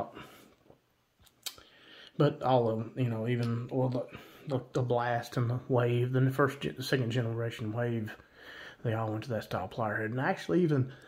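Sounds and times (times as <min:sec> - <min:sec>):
person speaking: 0:01.4 - 0:11.0.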